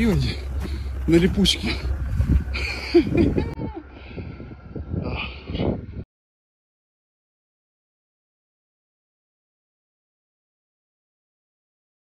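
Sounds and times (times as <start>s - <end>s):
low rumble: 0.0s - 6.0s.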